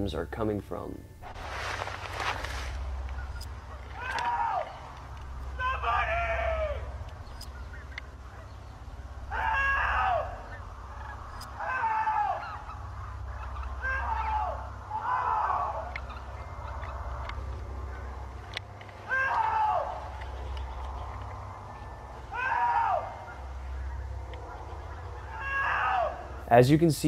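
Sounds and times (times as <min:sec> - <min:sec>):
low steady rumble: 0:00.0 - 0:27.0
man shouting for help: 0:05.5 - 0:06.9.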